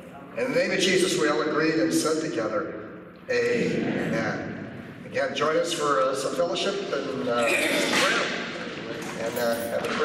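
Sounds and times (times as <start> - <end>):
people talking at once: 3.3 - 10.0.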